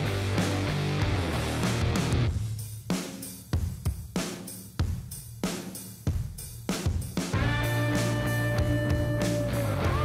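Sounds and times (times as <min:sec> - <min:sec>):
rock band playing: 0:00.0 - 0:02.4, 0:07.3 - 0:10.0.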